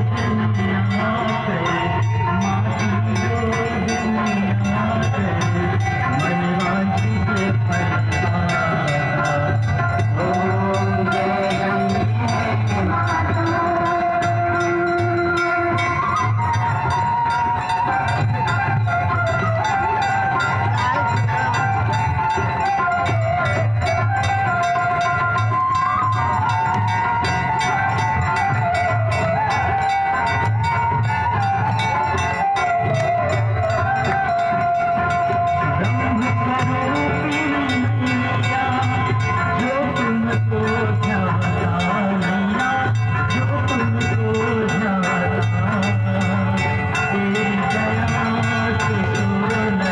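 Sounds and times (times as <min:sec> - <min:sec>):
wavering devotional melody: 0:00.0 - 0:49.9.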